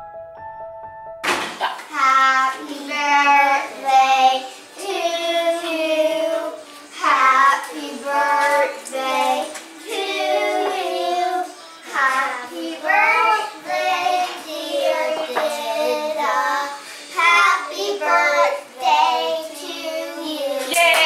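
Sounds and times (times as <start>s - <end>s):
high child-like voice singing: 1.9s - 21.0s.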